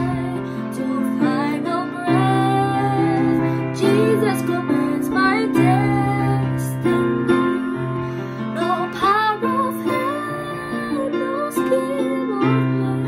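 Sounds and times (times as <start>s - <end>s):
girl singing a hymn: 0.0s - 7.8s, 8.5s - 13.0s.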